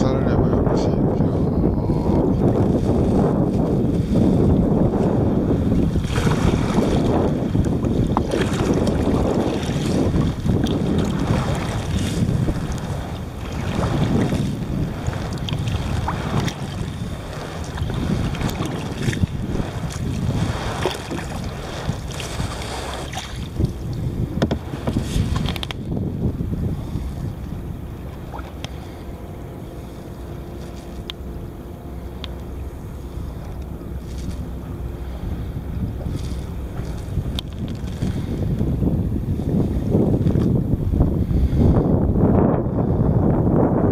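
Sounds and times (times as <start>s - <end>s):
wind on microphone: 0.0s - 43.9s
water splashing against kayak hull: 2.0s - 42.5s
paddle stroke splashes: 2.4s - 26.0s, 26.7s - 38.7s.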